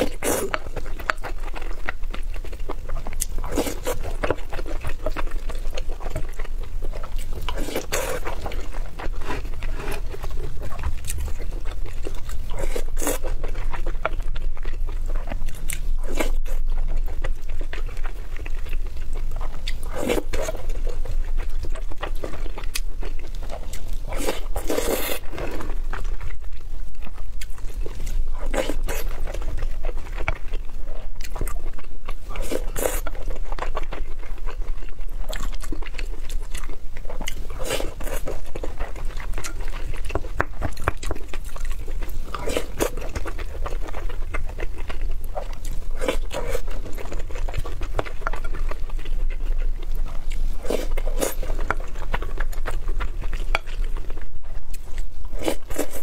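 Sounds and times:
chewing with mouth clicks: 0:00.0 - 0:56.0.

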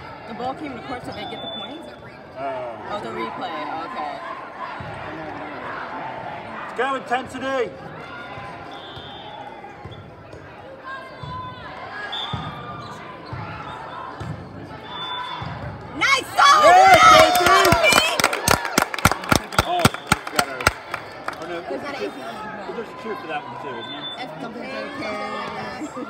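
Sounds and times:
girls cheering and shouting: 0:16.0 - 0:18.2
rhythmic clapping: 0:16.9 - 0:21.4.

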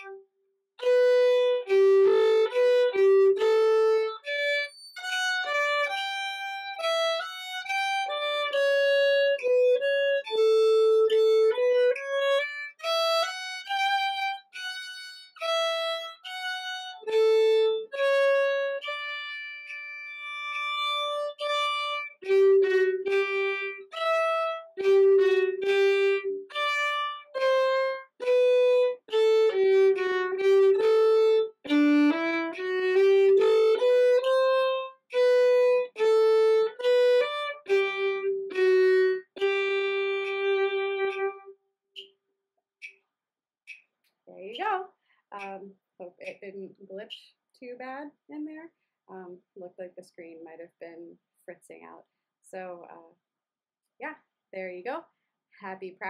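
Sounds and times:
solo violin melody: 0:00.0 - 0:00.2, 0:00.8 - 0:41.5.

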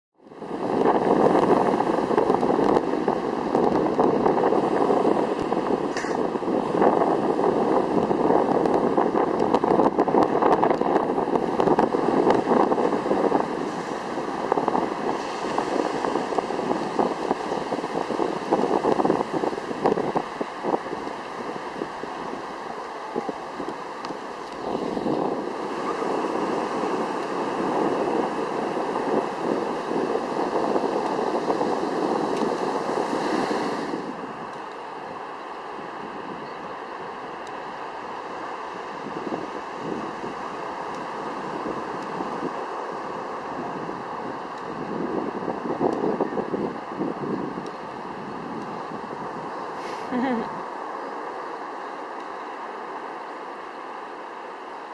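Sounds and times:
wind buffeting microphone: 0:00.2 - 0:50.8
ocean surf breaking: 0:00.2 - 0:54.9.

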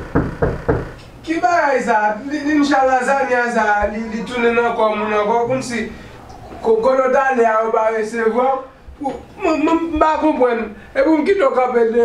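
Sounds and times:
fist knocking on metal door: 0:00.0 - 0:01.0.

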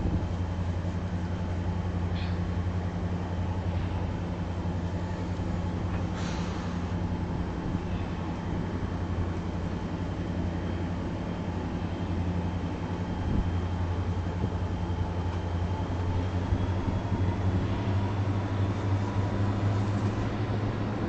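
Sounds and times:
diesel engine drone: 0:00.0 - 0:21.0
train rolling noise: 0:00.0 - 0:21.0.

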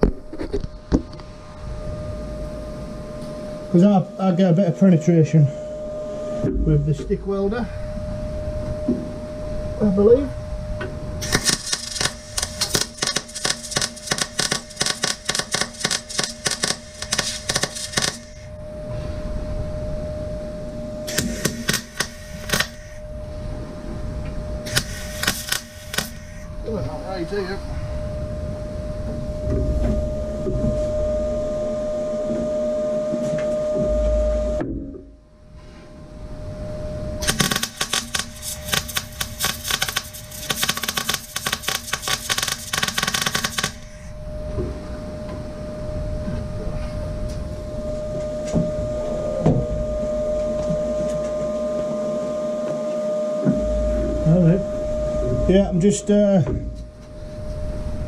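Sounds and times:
steady hum: 0:00.0 - 0:58.0
arc welder crackling: 0:11.2 - 0:18.5, 0:21.1 - 0:23.0, 0:24.7 - 0:26.5, 0:37.2 - 0:44.1.

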